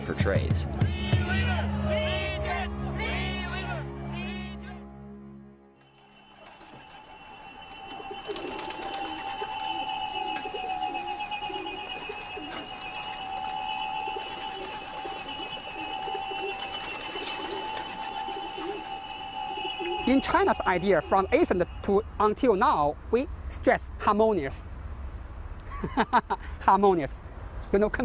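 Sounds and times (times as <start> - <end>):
two-note pigeon whistle drone: 5.9 - 23.1
pigeons cooing: 6.0 - 21.0.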